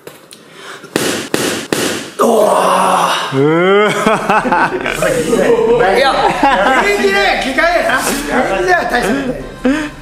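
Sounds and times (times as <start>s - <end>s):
boxing glove punch thud: 1.0s - 2.2s.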